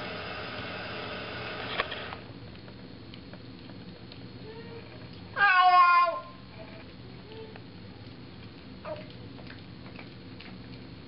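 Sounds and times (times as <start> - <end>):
cat meowing: 5.4 - 6.4.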